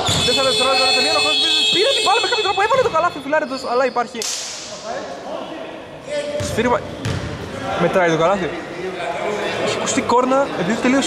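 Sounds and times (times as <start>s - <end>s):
thumps on basketball court: 6.4s - 7.4s.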